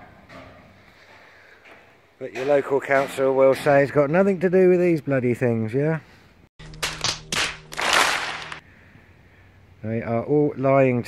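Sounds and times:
sharp claps: 6.6s - 8.6s.

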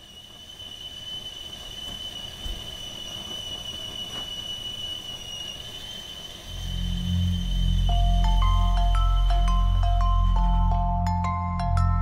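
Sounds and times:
kettle whistling: 0.0s - 12.0s
deep music drone: 6.5s - 12.0s
low rumble: 6.5s - 12.0s.

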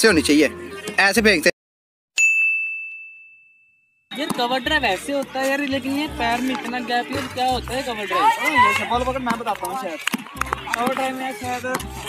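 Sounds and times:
high clear ding: 2.2s - 4.0s.

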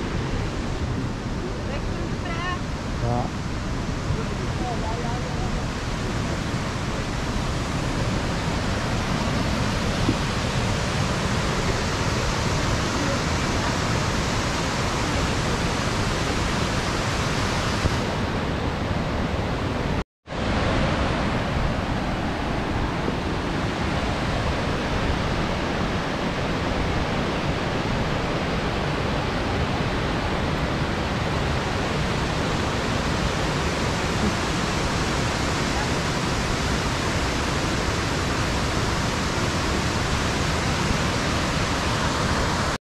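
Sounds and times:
waterfall rushing: 0.0s - 42.8s.

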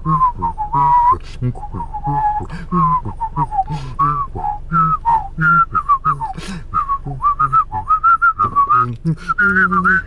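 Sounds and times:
person whistling and humming together: 0.0s - 10.0s.

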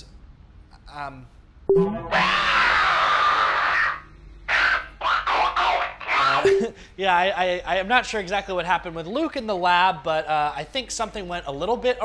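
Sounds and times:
man screaming: 2.1s - 4.0s.

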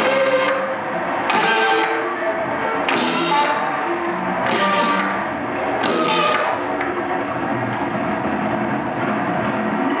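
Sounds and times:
harsh distorted noise music: 0.0s - 10.0s.

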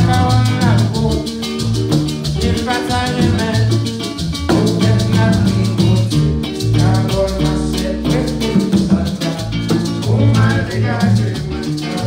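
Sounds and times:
bass line: 0.0s - 12.0s
maracas shaking: 0.0s - 12.0s
strummed acoustic guitar: 0.0s - 12.0s.

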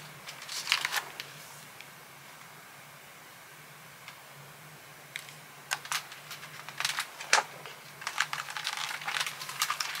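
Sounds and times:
faint steady hum: 0.0s - 10.0s
paper rustles and clicks: 0.3s - 1.3s, 5.2s - 10.0s
book page turning: 0.3s - 1.6s, 5.7s - 10.0s.

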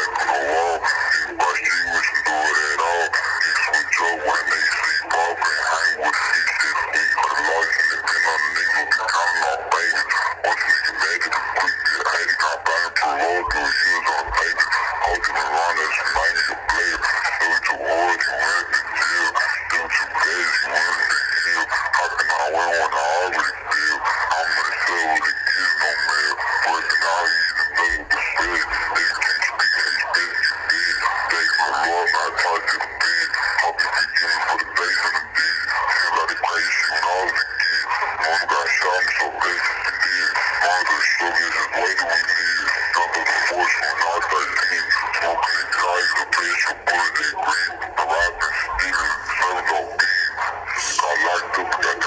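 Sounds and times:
indistinct voice talking: 0.0s - 52.0s.

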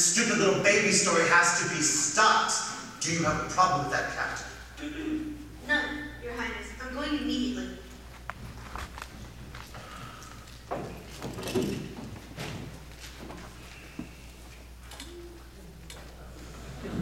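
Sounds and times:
footsteps on wooden stage: 10.6s - 14.5s.

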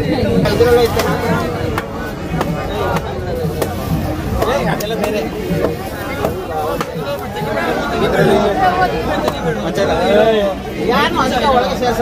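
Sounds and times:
crowd shouting and chanting: 0.0s - 12.0s
sharp percussive strikes: 0.4s - 7.6s.

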